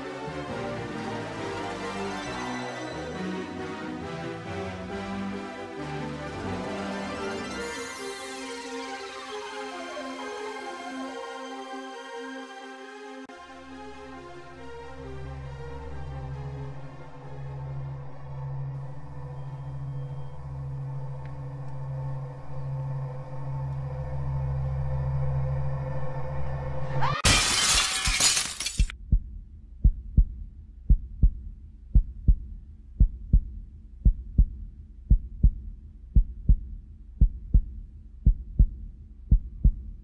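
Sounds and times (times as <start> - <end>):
low music drone: 0.0 - 27.0
loud shattering crash: 27.0 - 28.9
heartbeat double thumps: 29.0 - 40.0.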